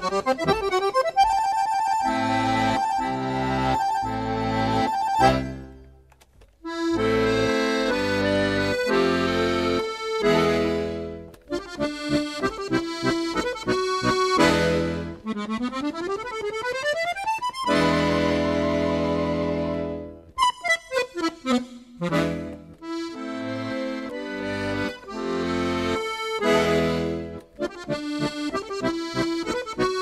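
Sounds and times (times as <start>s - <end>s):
accordion playing a dance tune: 0.0s - 30.0s.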